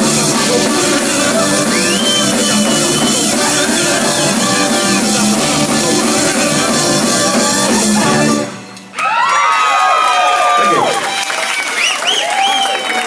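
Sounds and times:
live rock band playing: 0.0s - 8.9s
audience applause: 8.9s - 13.0s
audience cheering and whooping: 8.9s - 13.0s.

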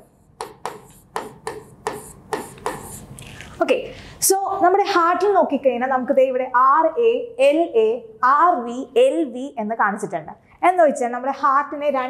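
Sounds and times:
marker pen scratching on board: 0.0s - 3.4s.

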